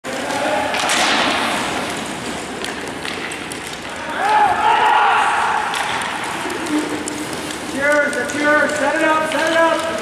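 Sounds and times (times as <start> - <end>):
players' voices: 0.1 - 10.0.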